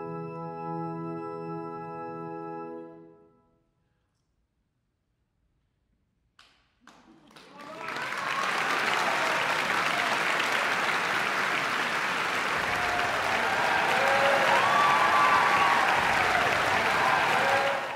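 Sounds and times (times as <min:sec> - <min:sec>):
audience clapping: 0:06.4 - 0:17.9
voices calling out: 0:12.6 - 0:17.9.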